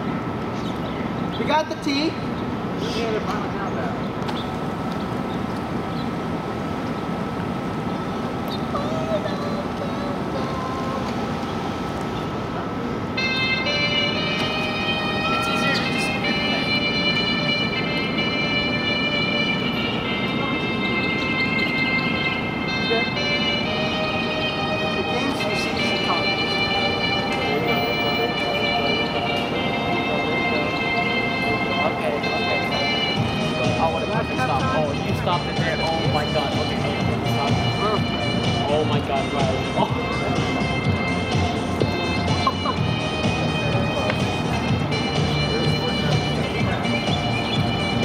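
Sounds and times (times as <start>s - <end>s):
music with high notes: 13.2s - 48.0s.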